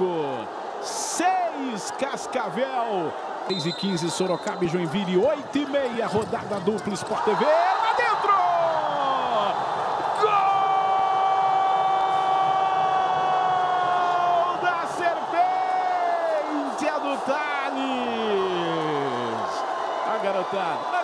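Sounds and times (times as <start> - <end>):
crowd cheering: 0.0 - 21.0.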